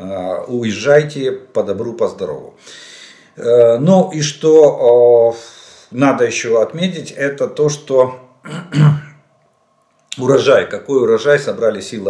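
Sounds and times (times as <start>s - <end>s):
man clearing his throat: 8.4s - 9.2s.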